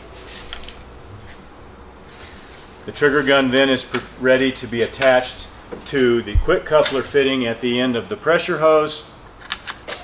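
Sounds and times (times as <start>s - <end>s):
low steady hum: 0.0s - 9.8s.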